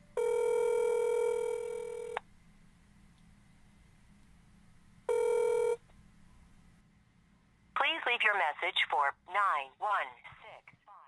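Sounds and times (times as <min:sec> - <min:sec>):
telephone ringback tone: 0:00.2 - 0:02.2, 0:05.1 - 0:05.8.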